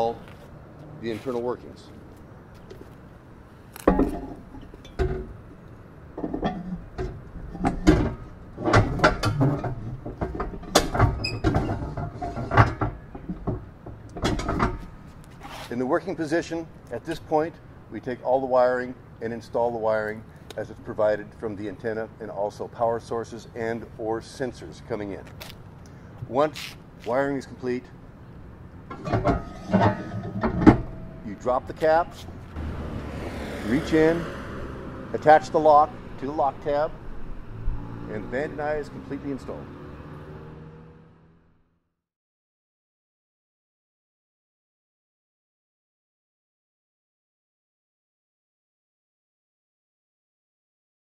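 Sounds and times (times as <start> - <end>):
knocks and clunks of handled parts: 3.7 - 5.4, 6.1 - 15.4, 28.9 - 32.6.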